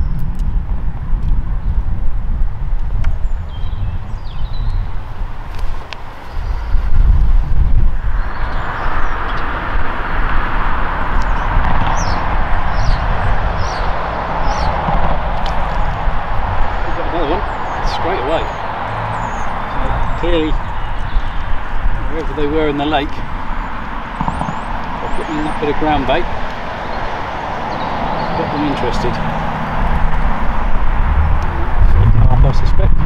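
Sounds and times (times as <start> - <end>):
steady rushing noise: 0.0 - 33.0
wind rumbling on microphone: 0.0 - 33.0.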